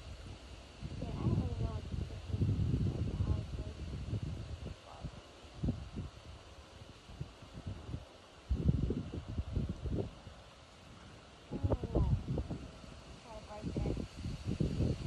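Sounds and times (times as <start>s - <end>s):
wind gusting over microphone: 0.0s - 15.0s.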